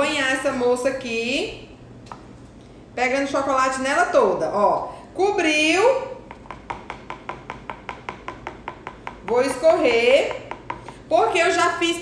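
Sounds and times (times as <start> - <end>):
fork tapping bowl rim: 6.2 - 11.0.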